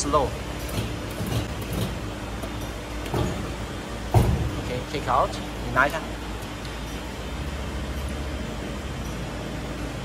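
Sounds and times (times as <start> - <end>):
hydraulic power pack humming: 0.0 - 10.0.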